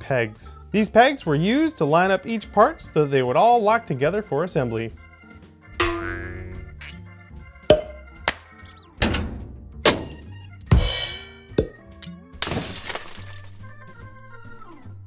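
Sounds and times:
background music: 0.0 - 15.0
plastic pieces thunking: 12.4 - 13.6.

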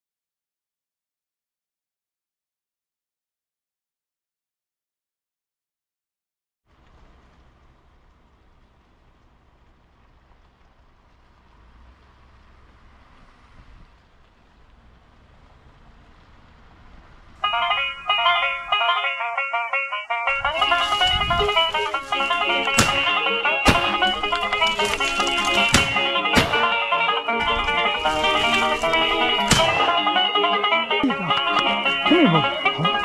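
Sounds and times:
bluegrass recording: 10.3 - 33.0
banjo picking quick runs: 17.4 - 33.0.

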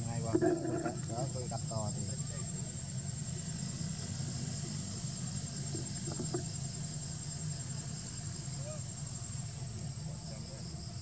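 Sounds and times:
insect drone: 0.0 - 11.0
low continuous rumble: 0.0 - 11.0.

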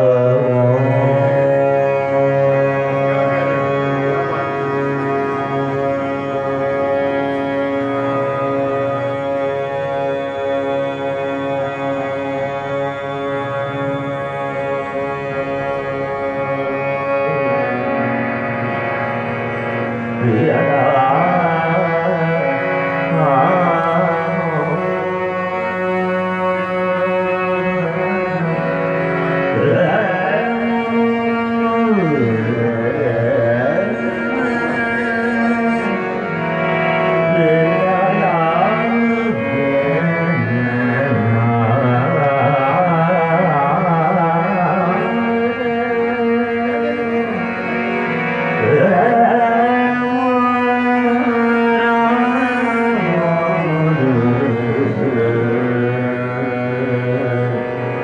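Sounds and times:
man singing: 0.0 - 18.0, 20.2 - 28.7, 29.4 - 36.4, 37.0 - 58.0
harmonium sustaining notes: 0.0 - 58.0
person singing long note: 29.5 - 36.4.

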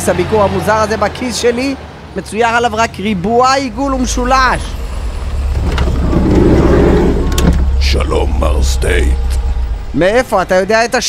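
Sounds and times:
car engine rumble: 3.0 - 11.0.

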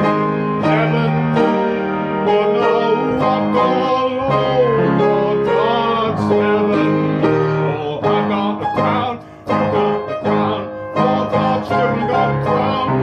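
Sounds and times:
upright piano playing chords: 0.0 - 13.0.

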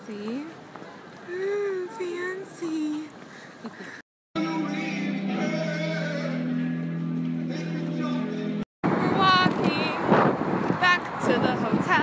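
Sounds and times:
woman's voice: 0.0 - 0.6, 1.3 - 3.2, 9.0 - 10.0, 10.8 - 12.0
road traffic passing: 0.0 - 12.0
wind on microphone: 8.9 - 12.0.

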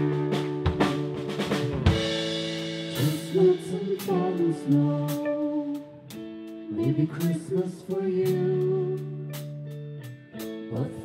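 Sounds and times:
electric guitars and bass chords: 0.0 - 11.0
woman singing: 3.0 - 9.4, 10.6 - 11.0.

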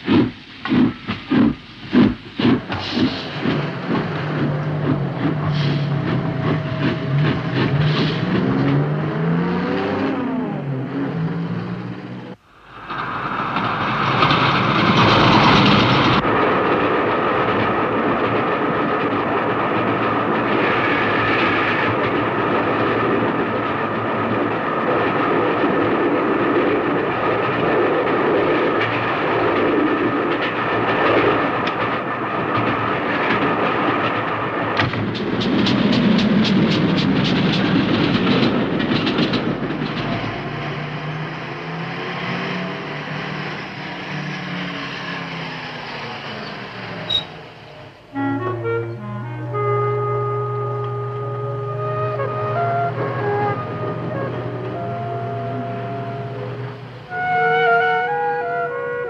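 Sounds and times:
carriages rattling and clattering: 0.0 - 48.8, 49.5 - 59.0
steam train rhythmic beats: 0.0 - 59.0.

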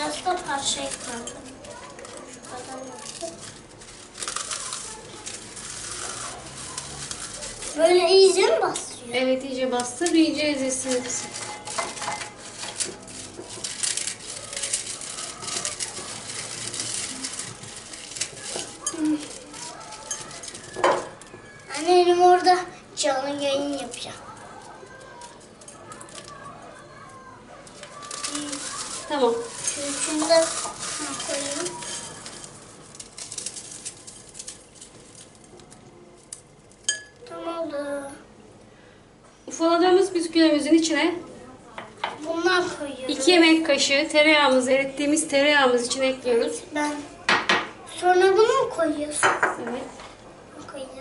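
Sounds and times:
biscuits crunching and crackling: 0.0 - 22.7, 23.3 - 37.3
hands clinking against glass: 36.9 - 37.2.

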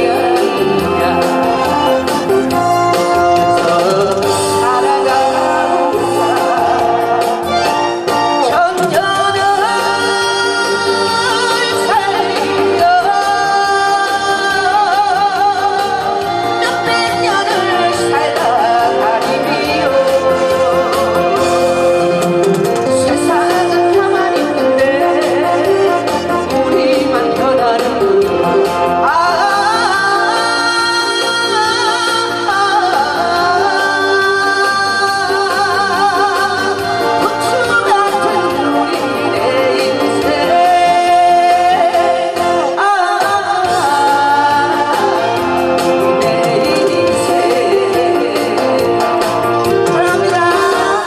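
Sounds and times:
amplified backing music: 0.0 - 51.0
instrumental accompaniment: 0.0 - 51.0
woman singing with vibrato: 0.0 - 51.0.

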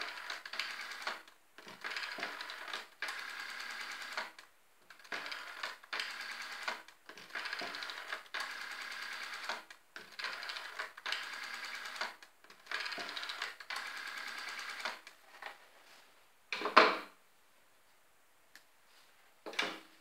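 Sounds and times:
rotary telephone dial ticking: 0.0 - 15.1.

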